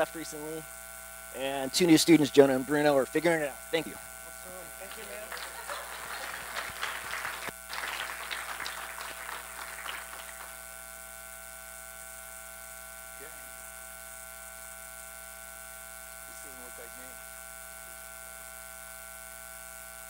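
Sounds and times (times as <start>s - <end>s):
steady hum: 0.0s - 19.0s
audience clapping: 4.8s - 10.6s.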